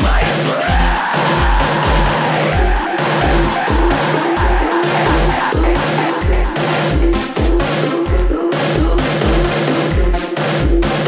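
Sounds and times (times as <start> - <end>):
distorted synths: 0.0 - 11.0
heavy kick drum: 0.0 - 11.0
noisy synth sweep: 0.0 - 11.0.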